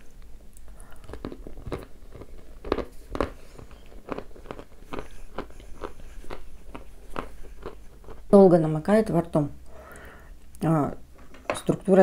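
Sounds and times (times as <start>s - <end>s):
crisp chewing crunches: 0.1s - 8.4s.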